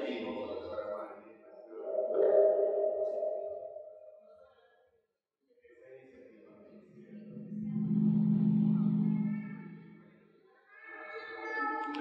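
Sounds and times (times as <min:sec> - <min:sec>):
ringing musical tone: 0:01.8 - 0:04.1.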